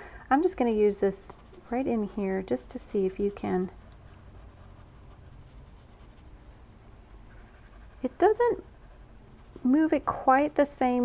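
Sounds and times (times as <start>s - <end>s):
blending stump rubbing on paper: 0.5s - 10.8s.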